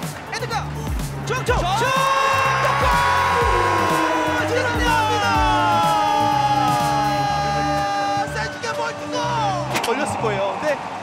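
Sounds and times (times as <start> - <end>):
music with bass beat: 0.0 - 7.8
commentators shouting: 1.3 - 9.4.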